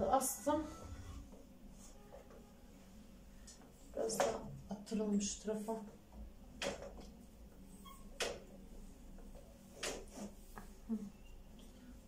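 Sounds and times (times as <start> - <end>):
laundry on metal drying rack: 0.0 - 12.0
soft rustling of laundry: 1.2 - 12.0.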